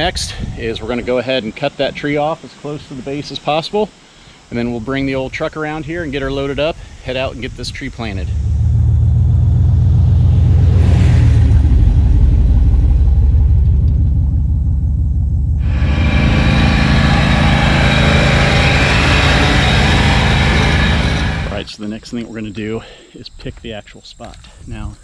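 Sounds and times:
truck engine rumbling: 0:05.3 - 0:22.5
loud rushing hiss: 0:15.6 - 0:21.9.

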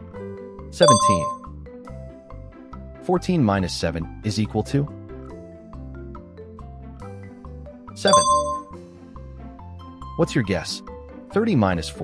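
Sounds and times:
bright bell-like ding chime: 0:00.8 - 0:01.4, 0:08.1 - 0:08.8.

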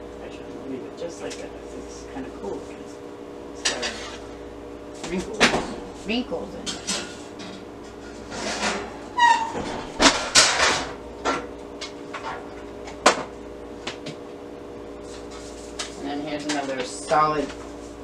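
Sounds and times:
faint steady hum: 0:00.0 - 0:18.0.

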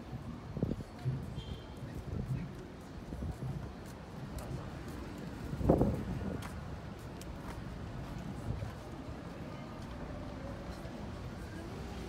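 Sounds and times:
light footstep clicks: 0:02.2 - 0:08.8.

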